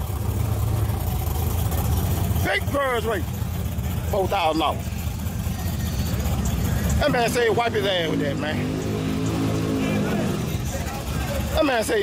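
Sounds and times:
race car engines idling: 0.0 - 12.0.

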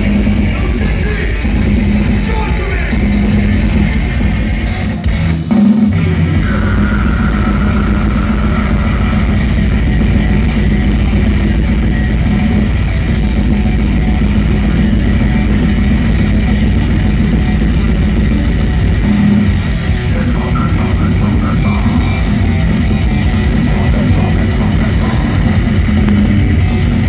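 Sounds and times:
death metal band playing live: 0.0 - 27.0.

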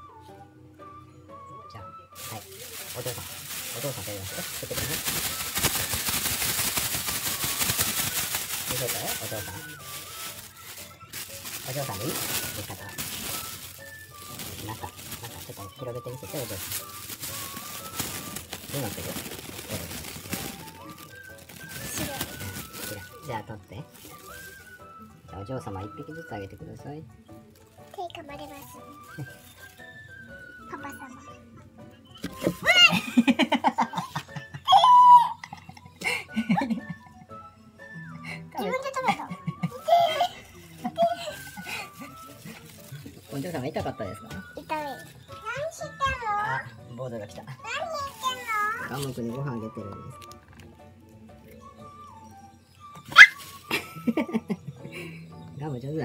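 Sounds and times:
plastic bag crinkling: 2.2 - 24.9, 27.5 - 30.6, 32.2 - 33.3, 39.6 - 45.4, 47.9 - 50.7, 53.1 - 54.2
girl laughing: 32.6 - 35.8, 39.2 - 40.3
girl shrieking: 34.7 - 35.4
girl squealing: 34.7 - 35.4.

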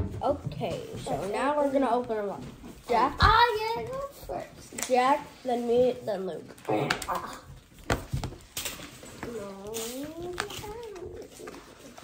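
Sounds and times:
plastic packaging crinkling: 7.0 - 12.0.

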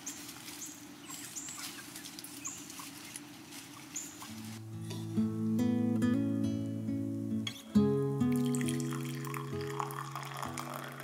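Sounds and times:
chickens chirping: 0.0 - 4.6
rustling and scratching in vegetation: 0.0 - 5.0.

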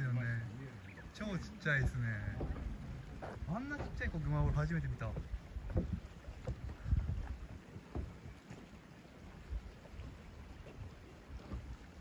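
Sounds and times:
wind buffeting microphone: 1.2 - 12.0.

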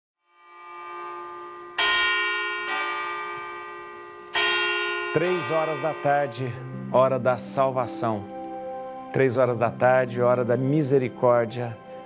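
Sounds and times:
bell tolling: 0.4 - 9.2.

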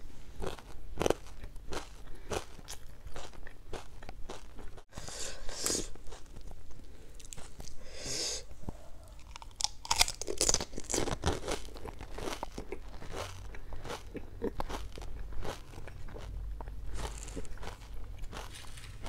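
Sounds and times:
crunching and chewing crisp food: 0.3 - 7.9, 8.7 - 19.0.

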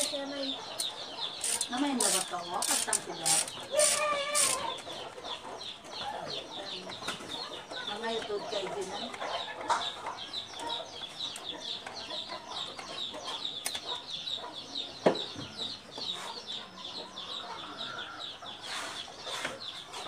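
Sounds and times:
birds chirping: 0.0 - 20.0.

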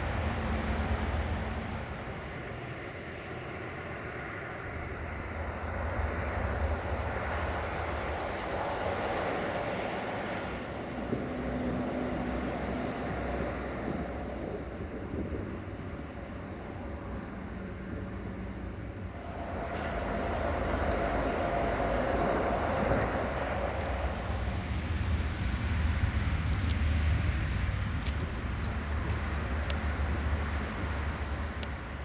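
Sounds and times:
steady low rumble: 0.0 - 32.0
wind buffeting microphone: 0.0 - 32.0.

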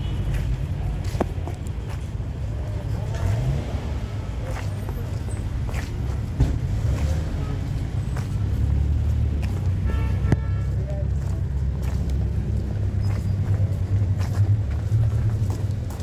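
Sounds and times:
footsteps on pavement: 0.0 - 16.0
street traffic rumble: 0.0 - 16.0.

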